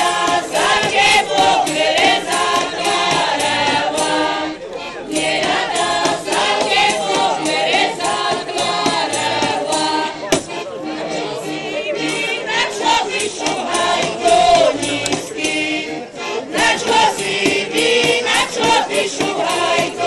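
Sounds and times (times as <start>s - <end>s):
group singing folk song: 0.0s - 20.0s.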